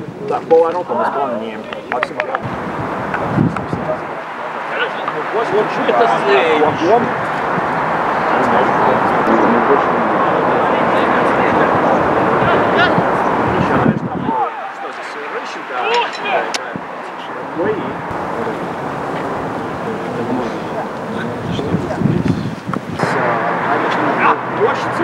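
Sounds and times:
steady rush of noise: 0.0s - 25.0s
players shouting: 0.8s - 22.2s.

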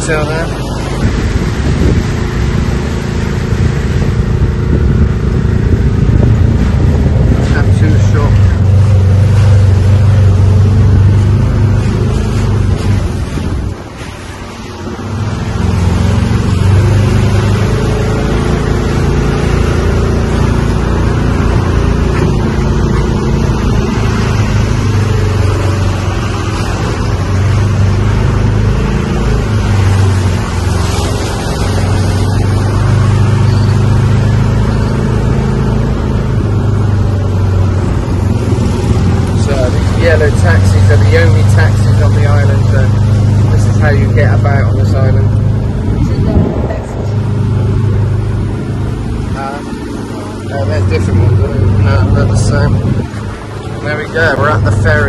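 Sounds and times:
cart engine droning: 0.0s - 55.0s
wind and road noise: 0.0s - 55.0s.

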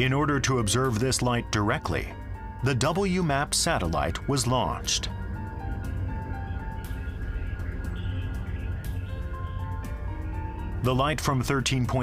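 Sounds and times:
low steady drone: 0.0s - 12.0s
sparse melody of high notes: 0.0s - 12.0s.

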